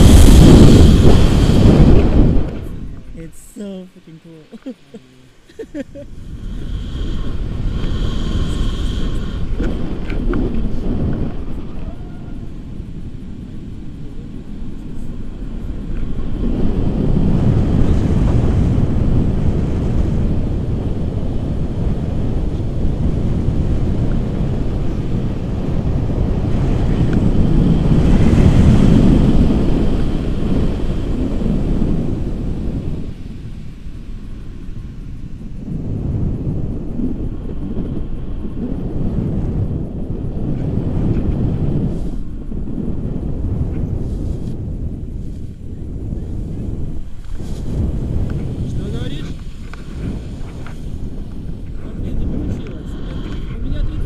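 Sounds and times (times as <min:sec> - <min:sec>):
wind buffeting microphone: 0:00.0 - 0:54.0.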